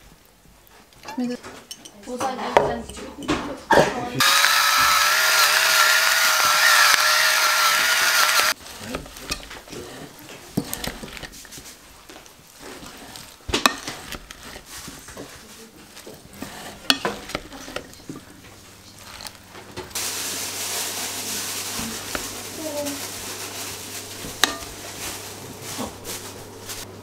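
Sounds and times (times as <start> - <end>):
small electric motor whirring: 4.2 - 8.6.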